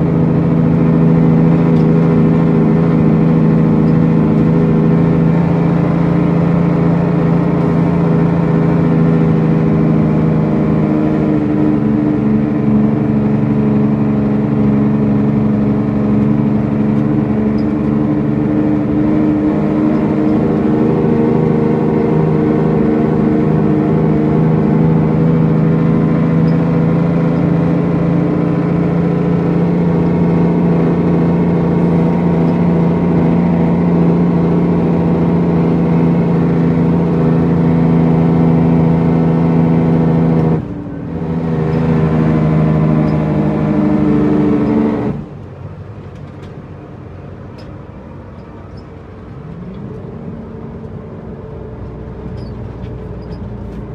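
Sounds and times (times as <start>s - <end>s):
truck diesel engine drone: 0.0s - 53.9s.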